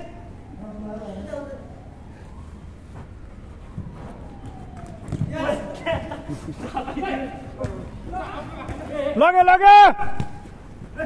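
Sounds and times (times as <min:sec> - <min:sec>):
indoor court background: 0:00.0 - 0:11.0.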